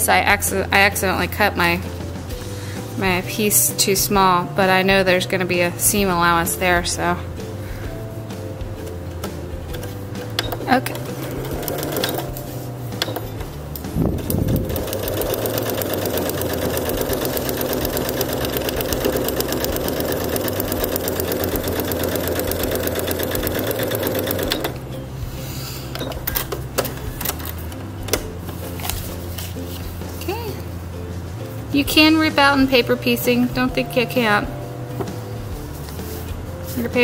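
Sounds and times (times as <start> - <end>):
sewing machine stitching: 9.7 - 12.4, 13.0 - 13.4, 14.2 - 24.8.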